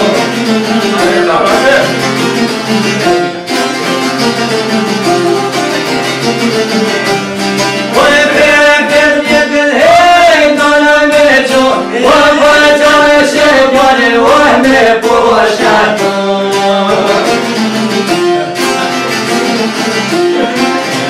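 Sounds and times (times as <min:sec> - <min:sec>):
man singing long notes: 0:00.0 - 0:02.1, 0:07.8 - 0:21.0
plucked lute music: 0:00.0 - 0:21.0.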